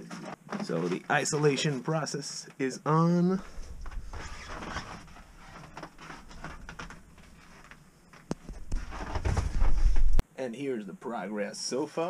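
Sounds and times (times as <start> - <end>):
faint rustling: 3.4 - 10.2.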